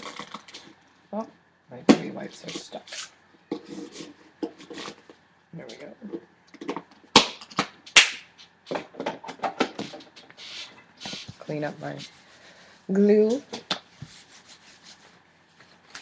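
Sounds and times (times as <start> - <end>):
wet wipes rustling: 10.4 - 16.0.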